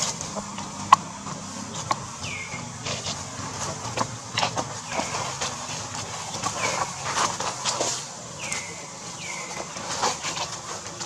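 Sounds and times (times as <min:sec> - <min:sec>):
footsteps crunching in dry leaves: 0:00.0 - 0:11.0.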